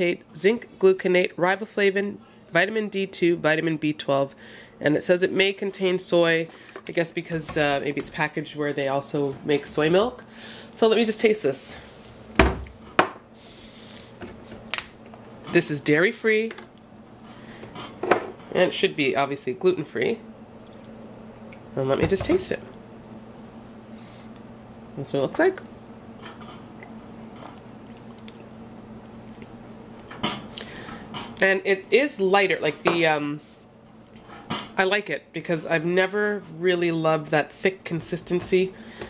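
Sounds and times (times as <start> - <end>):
person sipping and swallowing: 26.8 - 28.6
mouth clicks and slurps: 27.8 - 28.5.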